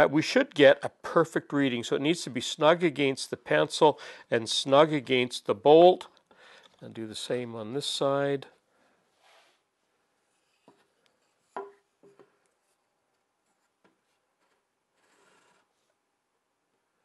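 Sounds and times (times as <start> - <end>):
soft rub: 9.1 - 11.6.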